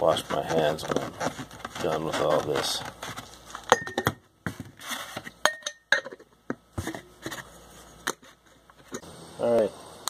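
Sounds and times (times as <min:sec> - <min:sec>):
glass jar clinking: 0:03.7 - 0:04.2, 0:05.4 - 0:06.2.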